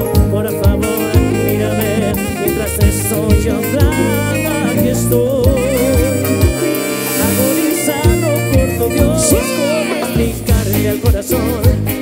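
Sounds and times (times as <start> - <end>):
live band playing latin dance music: 0.0 - 12.0
steady bass drum beat: 0.0 - 12.0.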